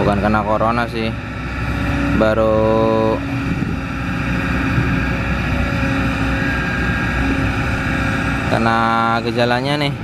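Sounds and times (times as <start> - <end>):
excavator diesel engine rumbling: 0.0 - 10.0.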